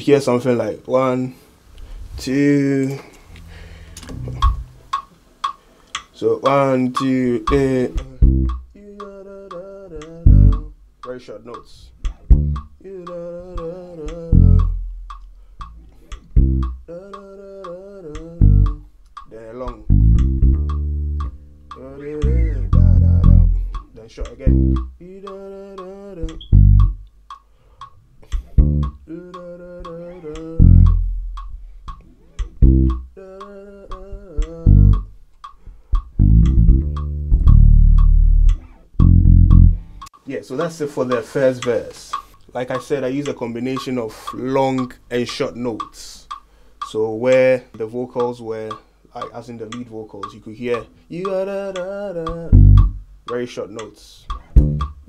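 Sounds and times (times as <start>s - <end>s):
electric bass guitar: 3.2s - 4.9s, 7.6s - 8.8s, 10.0s - 10.8s, 11.9s - 16.9s, 18.2s - 18.9s, 19.7s - 25.0s, 26.2s - 27.1s, 28.3s - 29.1s, 29.8s - 33.2s, 34.0s - 35.2s, 36.0s - 40.1s, 52.3s - 53.1s, 54.3s - 55.0s
ticking beat: 3.2s - 55.0s
lead vocal singing: 6.2s - 10.7s, 12.8s - 14.8s, 16.9s - 18.8s, 21.8s - 26.5s, 29.1s - 31.0s, 33.2s - 35.0s, 50.3s - 52.9s.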